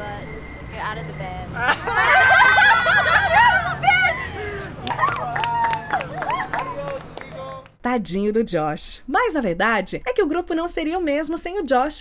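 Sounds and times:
street traffic hum: 0.0 - 7.8
people shrieking and laughing: 1.6 - 6.9.

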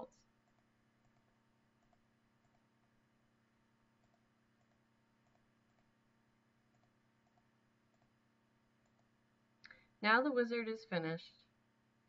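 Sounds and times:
computer mouse clicks: 0.4 - 2.8, 4.0 - 5.9, 6.6 - 8.2, 8.8 - 9.8.

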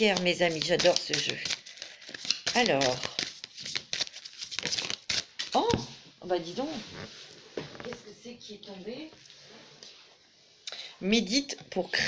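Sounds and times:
cards being shuffled: 0.0 - 5.9.

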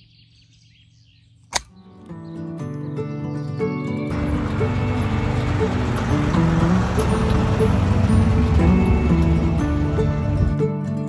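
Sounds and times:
faint birdsong: 0.0 - 10.4.

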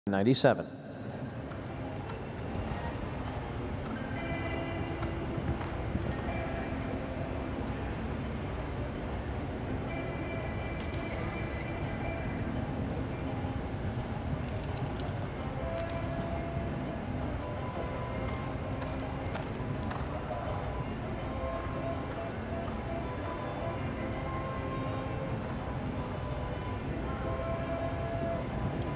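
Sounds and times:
background music: 0.1 - 28.9
horse hoofbeats on sand: 1.4 - 7.1, 14.2 - 24.6.

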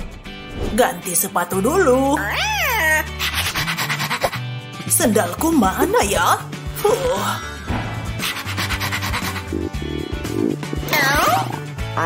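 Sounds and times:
background music: 0.0 - 12.0
cartoon pet meow-like call: 2.2 - 3.1.

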